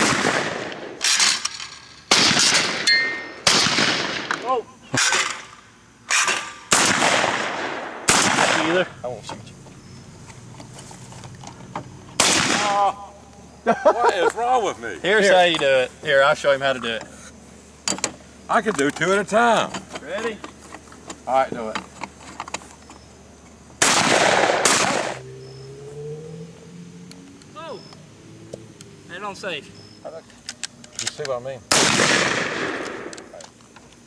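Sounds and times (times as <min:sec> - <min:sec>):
shotgun shots echoing: 0:00.0 - 0:01.4, 0:02.1 - 0:05.5, 0:06.1 - 0:08.9, 0:12.2 - 0:12.9, 0:23.8 - 0:25.2, 0:31.7 - 0:33.2
low steady hum: 0:00.1 - 0:34.0
shotgun handling clicks and knocks: 0:17.8 - 0:23.5, 0:30.2 - 0:31.4, 0:32.7 - 0:34.0.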